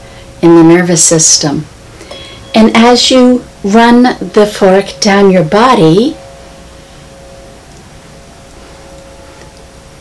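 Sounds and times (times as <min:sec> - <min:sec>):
tuning fork ringing: 0:02.0 - 0:10.0.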